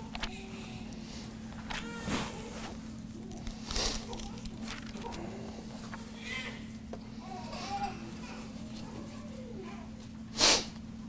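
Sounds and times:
steady low hum: 0:00.0 - 0:11.0
paper pages rustling: 0:01.6 - 0:06.1.

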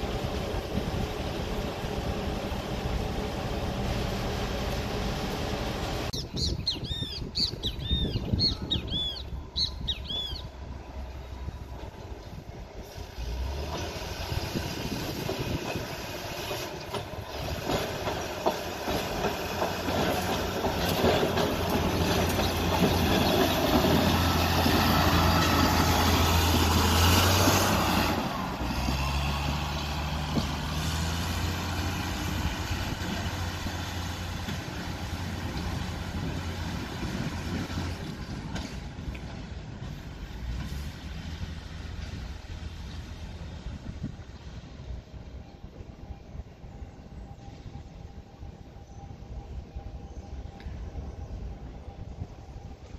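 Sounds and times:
rail vehicle engine: 0:00.0 - 0:52.9
wheels clacking over rails: 0:11.8 - 0:43.8.

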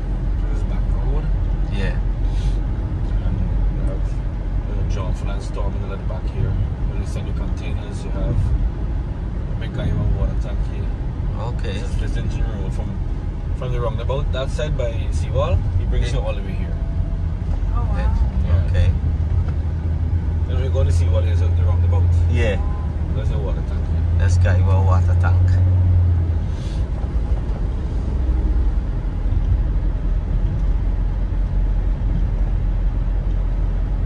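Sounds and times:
car engine and road rumble: 0:00.0 - 0:34.0.

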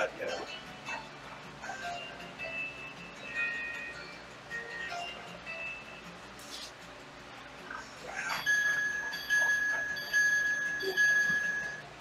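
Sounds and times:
retro video game music: 0:08.1 - 0:12.0.

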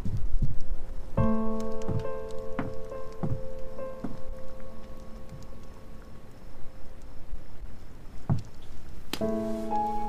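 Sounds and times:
low background hiss: 0:00.0 - 0:10.0
soft background music: 0:01.0 - 0:07.0, 0:09.2 - 0:10.0.

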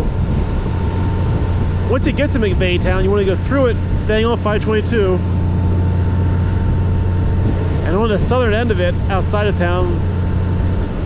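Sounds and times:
motorcycle engine rumble: 0:00.0 - 0:11.0
wind noise on microphone: 0:00.0 - 0:11.0.

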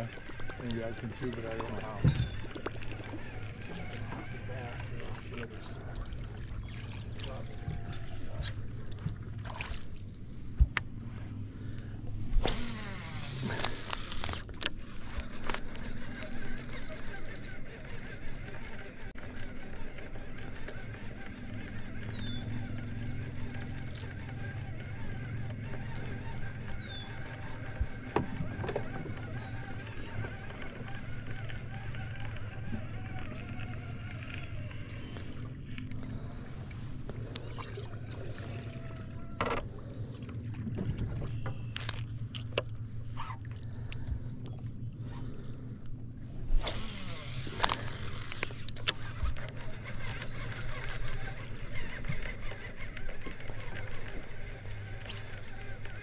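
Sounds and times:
electric trolling motor humming: 0:00.0 - 0:56.0.

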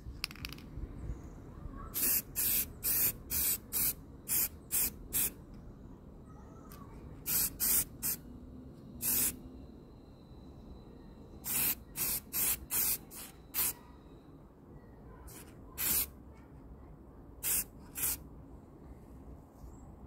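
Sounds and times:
spray paint can hissing: 0:02.0 - 0:05.4, 0:07.2 - 0:08.2, 0:09.0 - 0:09.4, 0:11.4 - 0:13.8, 0:15.3 - 0:16.1, 0:17.4 - 0:18.2.

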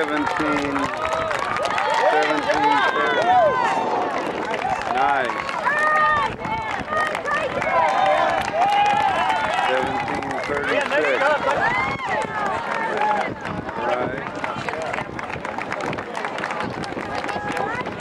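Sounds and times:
spectators shouting and cheering: 0:00.0 - 0:18.0.

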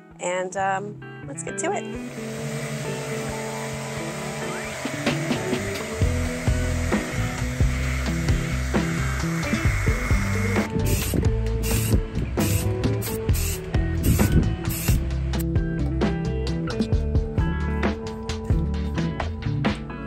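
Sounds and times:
background music: 0:00.0 - 0:20.0
orbital sander running: 0:01.9 - 0:15.1
spray paint can hissing: 0:04.2 - 0:15.1.

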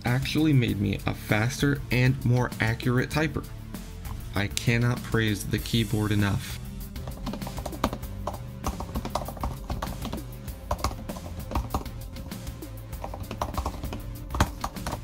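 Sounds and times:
background music: 0:00.0 - 0:15.0
laptop keyboard typing: 0:07.0 - 0:15.0.

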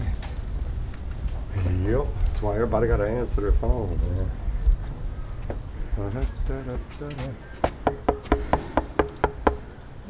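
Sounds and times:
knuckles knocking on door: 0:07.6 - 0:09.8.

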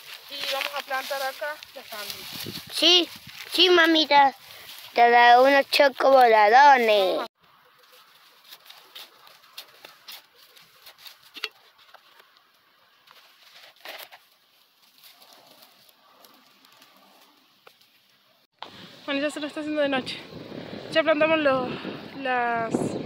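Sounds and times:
hands rustling soil and straw: 0:00.0 - 0:18.3.

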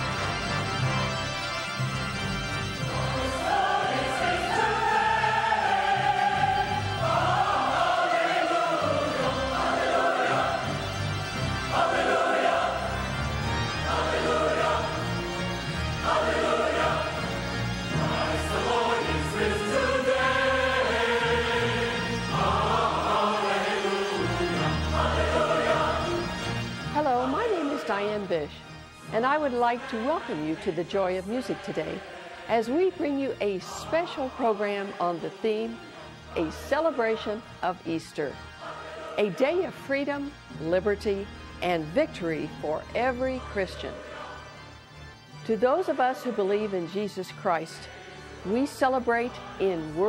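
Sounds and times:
low instrumental accompaniment: 0:00.0 - 0:50.0
choir singing: 0:02.7 - 0:28.5, 0:29.1 - 0:50.0.

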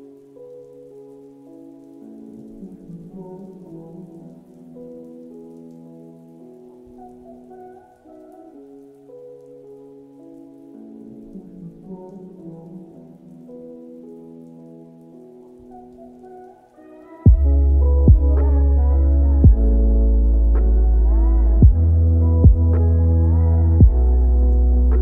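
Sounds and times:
steady rain: 0:00.0 - 0:25.0
muffled pop song: 0:02.1 - 0:14.5, 0:15.6 - 0:25.0.

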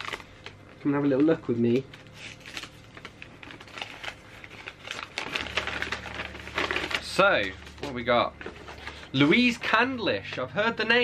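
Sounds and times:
tissue paper rustling and crinkling: 0:02.1 - 0:09.8.

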